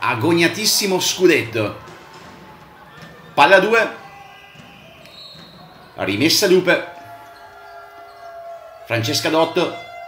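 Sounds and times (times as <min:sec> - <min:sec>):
basketball bouncing on wooden floor: 0:01.8 - 0:03.4, 0:04.0 - 0:06.0.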